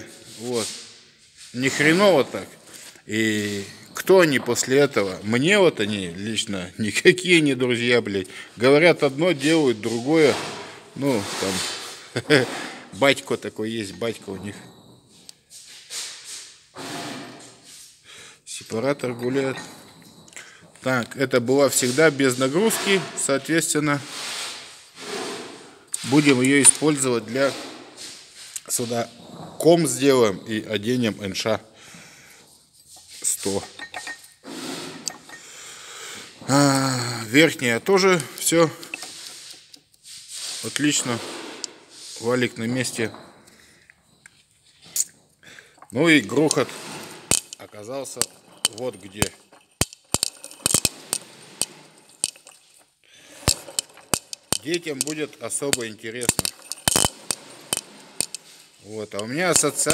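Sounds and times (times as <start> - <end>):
sharp irregular clicks and clinks: 35.0 - 35.6, 43.0 - 59.9
hand rubbing on gearbox: 46.0 - 52.8.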